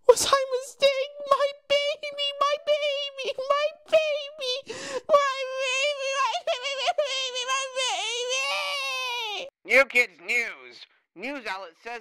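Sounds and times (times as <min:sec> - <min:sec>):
person wailing: 0:01.7 - 0:09.5.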